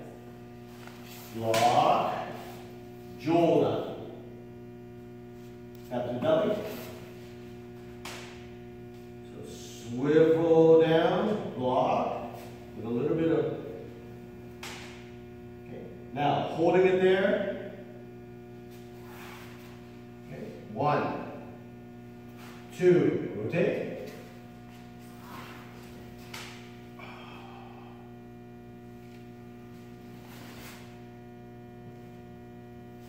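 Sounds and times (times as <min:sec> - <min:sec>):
electrical mains hum: 0:00.0 - 0:33.0.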